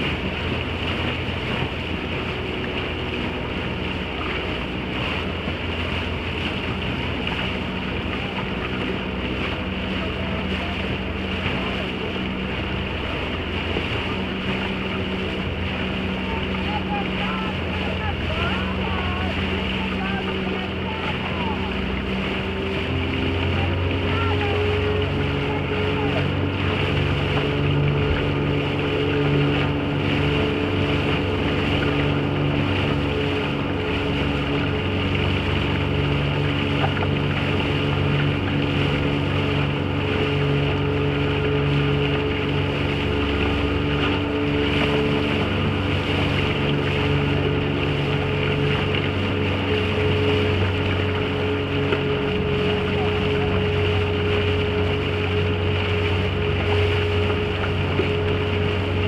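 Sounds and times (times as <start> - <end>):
motorboat engine running: 0.0 - 59.0.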